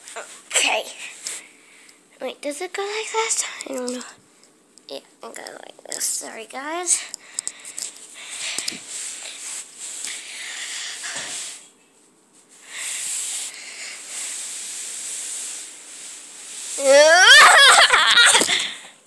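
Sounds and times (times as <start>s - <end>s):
rustling rubbing noise: 11.0s - 17.8s
child squealing: 16.8s - 18.4s.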